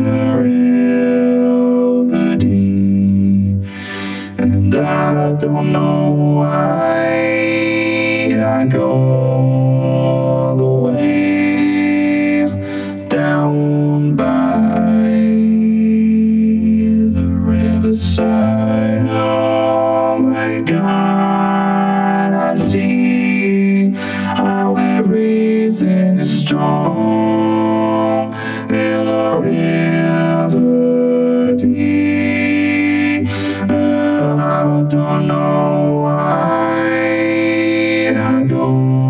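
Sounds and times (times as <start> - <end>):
vocoder synth chords: 0.0 - 39.0.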